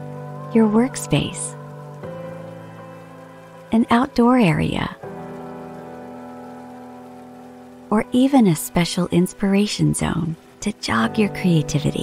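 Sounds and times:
fountain trickling: 0.0 - 12.0
soft sustained music chords: 0.0 - 12.0.

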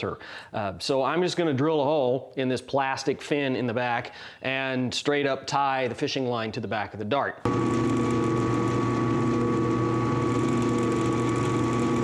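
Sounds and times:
drill press motor humming: 7.5 - 12.0.

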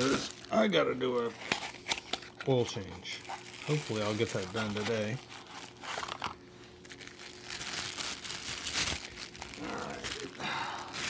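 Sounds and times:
plastic wrapping crinkling: 0.0 - 11.0.

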